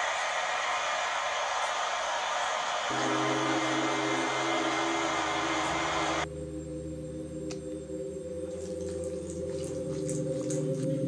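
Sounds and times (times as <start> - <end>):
loud rushing hiss: 0.0 - 6.3
low droning chord: 2.9 - 7.3.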